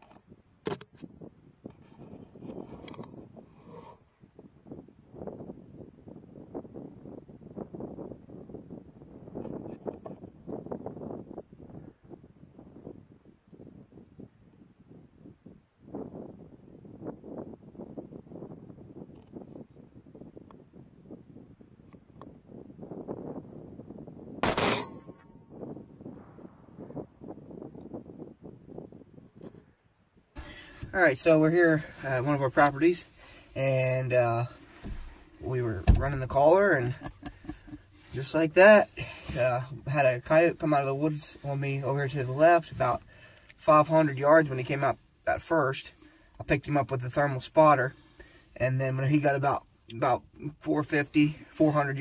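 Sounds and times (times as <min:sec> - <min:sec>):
rifle shot: 0:24.4 - 0:25.4, 0:26.1 - 0:27.5.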